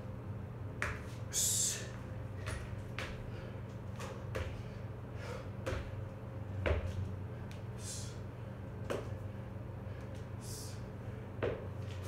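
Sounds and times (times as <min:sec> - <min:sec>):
feet slapping wooden floor: 0:05.6 - 0:06.0.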